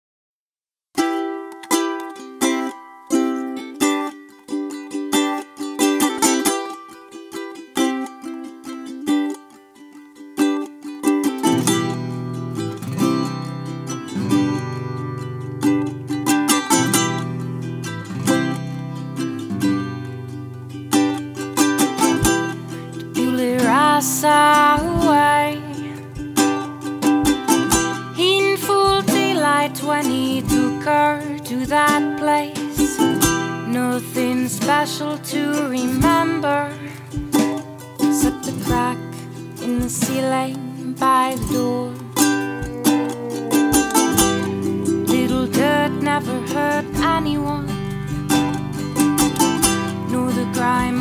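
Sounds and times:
ukulele picking: 1.0s - 51.0s
person singing: 21.0s - 51.0s
bass line: 42.2s - 51.0s.

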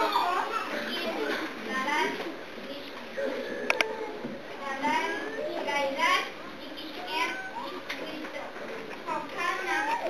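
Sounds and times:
children chattering and calling out: 0.0s - 10.0s.

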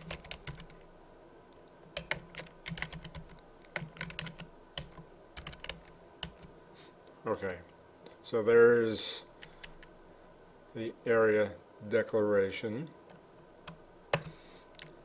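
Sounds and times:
computer keyboard typing: 0.0s - 0.8s, 2.0s - 6.5s, 9.4s - 9.9s, 13.6s - 15.0s.

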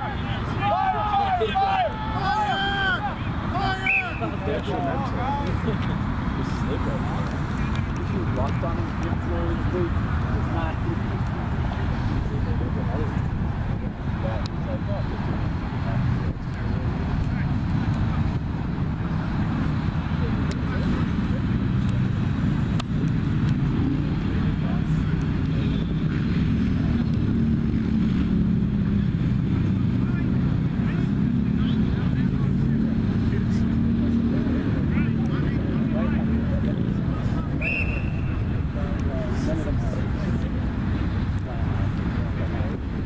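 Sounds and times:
distant voices: 0.0s - 43.0s
road traffic rumble: 0.0s - 43.0s.

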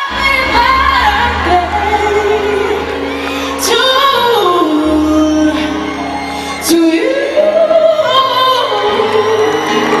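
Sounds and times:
woman singing pop song: 0.0s - 10.0s.

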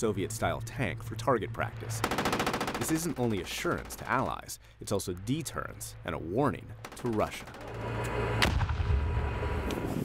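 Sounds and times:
deep rumble: 7.8s - 10.0s
explosion blast: 8.4s - 9.7s.

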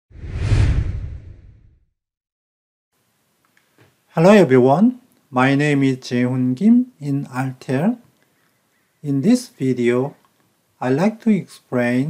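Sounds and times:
whoosh with low rumble: 0.1s - 1.8s.

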